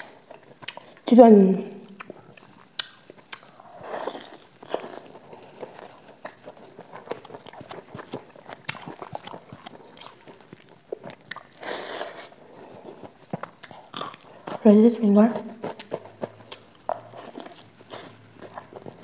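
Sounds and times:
chewing with wet mouth clicks: 0.2s - 1.1s, 1.9s - 14.6s, 15.4s - 19.0s.

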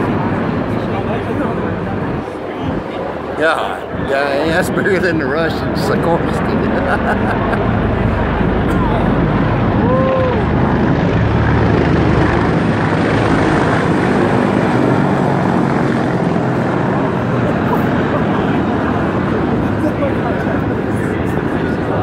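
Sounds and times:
helicopter flying low overhead: 0.0s - 22.0s.

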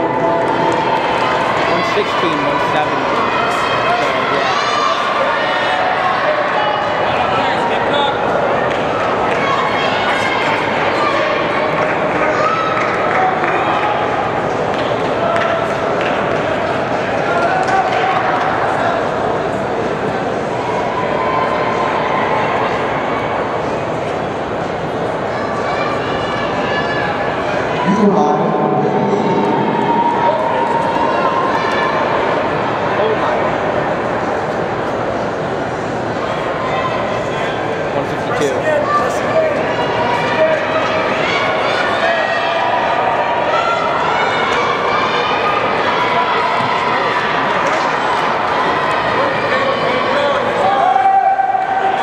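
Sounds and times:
crowd talking and calling out: 0.0s - 52.0s.

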